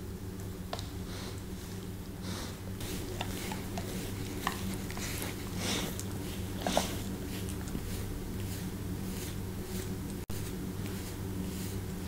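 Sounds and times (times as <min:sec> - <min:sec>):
steady low hum: 0:00.0 - 0:12.0
brush rustling through fur: 0:01.1 - 0:12.0
light brush ticks: 0:02.8 - 0:11.8.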